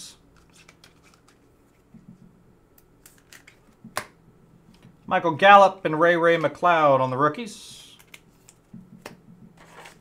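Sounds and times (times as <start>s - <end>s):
cards sliding and clicking: 0.4s - 1.8s, 8.0s - 10.0s.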